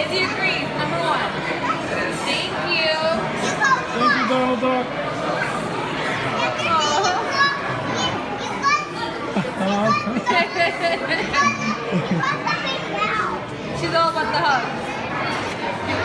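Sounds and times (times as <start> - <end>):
room chatter: 0.0 - 16.0.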